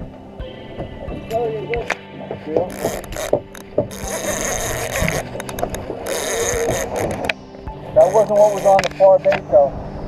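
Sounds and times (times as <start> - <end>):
rod and reel handling knocks: 1.3 - 7.4, 8.0 - 9.4
fishing reel ratcheting: 2.7 - 7.3, 8.0 - 9.0.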